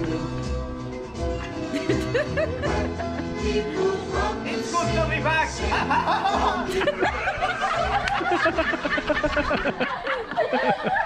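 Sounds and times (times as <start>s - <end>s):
people laughing: 1.4s - 3.4s, 5.6s - 11.0s.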